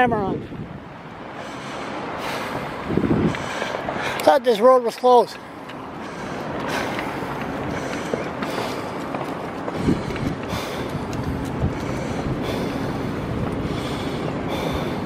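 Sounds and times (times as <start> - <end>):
wind buffeting microphone: 0.0 - 4.2, 5.6 - 15.0.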